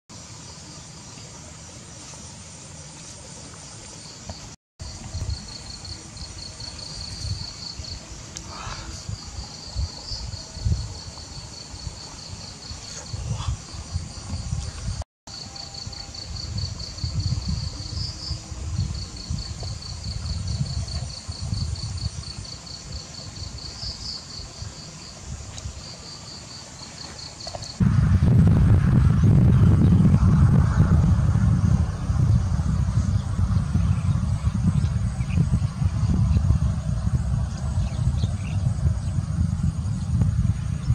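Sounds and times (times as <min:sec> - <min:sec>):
insect chirping: 0:00.1 - 0:28.0, 0:30.7 - 0:40.9
low uneven rumble: 0:27.8 - 0:40.9.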